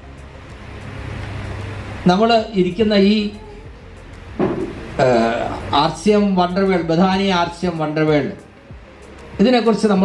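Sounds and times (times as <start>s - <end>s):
man speaking into a microphone: 2.1s - 3.5s, 5.0s - 8.4s.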